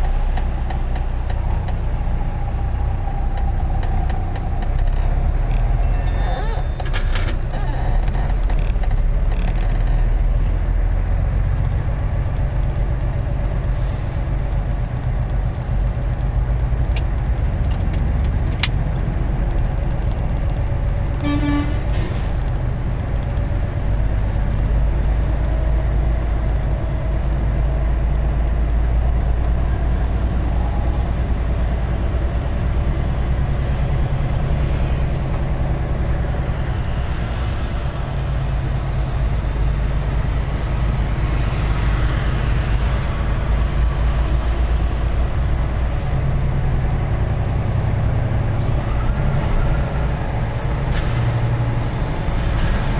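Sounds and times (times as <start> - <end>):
diesel truck engine running: 0.0 - 52.9
vehicle horn toot: 21.2 - 21.9.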